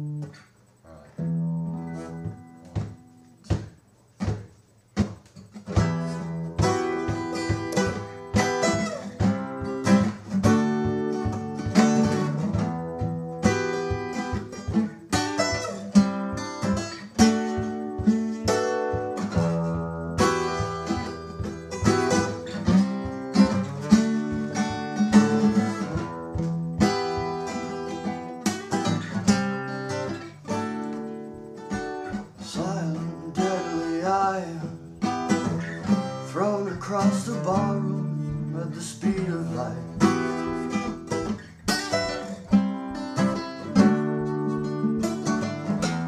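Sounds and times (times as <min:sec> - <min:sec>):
guitar chords and strumming: 0:00.0 - 0:46.0.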